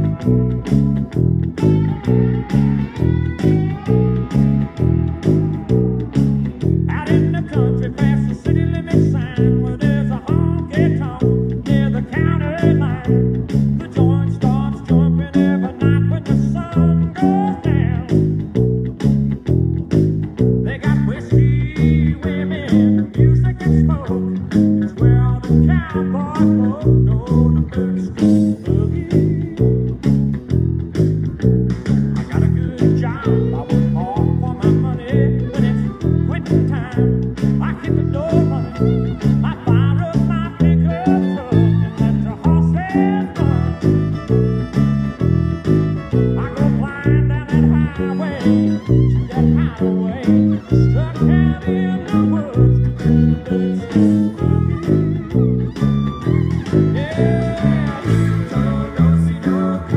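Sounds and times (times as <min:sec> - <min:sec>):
electric bass fingerstyle boogie line: 0:00.0 - 0:59.9
electric guitar riffs: 0:00.0 - 0:59.9.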